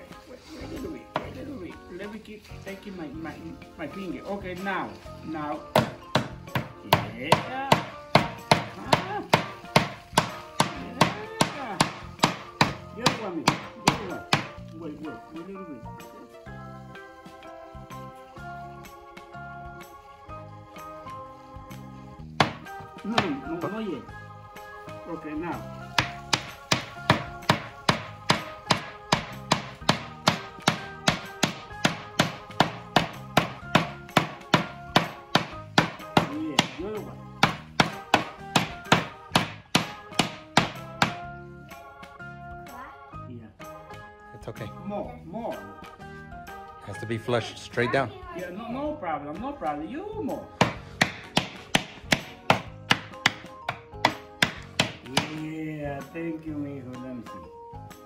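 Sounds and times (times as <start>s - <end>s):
background music: 0.0s - 58.0s
hammer hitting nail into wood: 5.8s - 14.6s, 22.4s - 23.4s, 26.0s - 36.8s, 37.4s - 41.2s, 50.6s - 55.4s.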